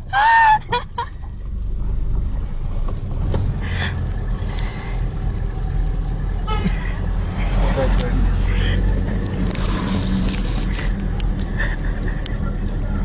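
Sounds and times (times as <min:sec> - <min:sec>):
vehicle rumble: 0:00.0 - 0:13.0
people's voices: 0:07.4 - 0:13.0.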